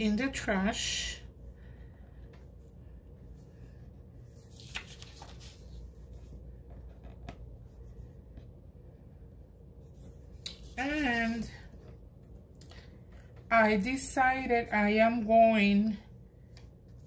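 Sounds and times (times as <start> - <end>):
paper pages rustling: 4.2 - 8.5.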